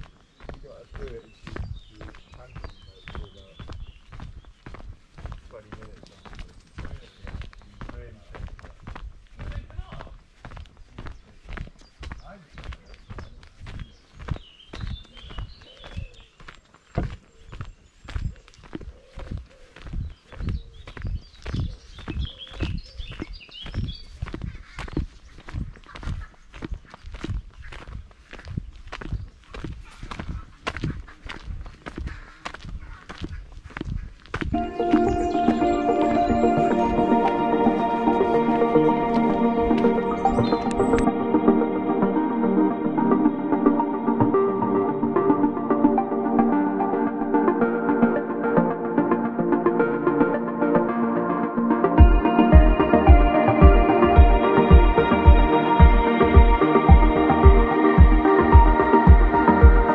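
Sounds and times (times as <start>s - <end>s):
footsteps on gravel path: 0.0s - 47.8s.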